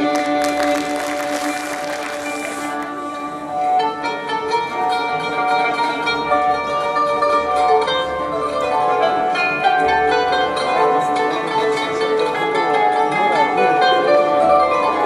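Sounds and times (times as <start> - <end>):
held ensemble notes: 0.0 - 14.9
plucked string melody: 0.0 - 15.0.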